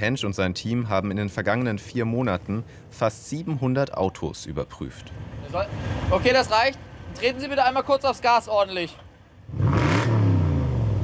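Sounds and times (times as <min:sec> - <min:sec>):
car engine revving: 0:09.4 - 0:11.0.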